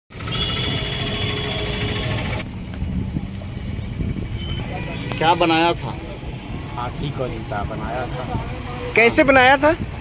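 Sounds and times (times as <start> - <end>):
road traffic rumble: 0.1 - 10.0.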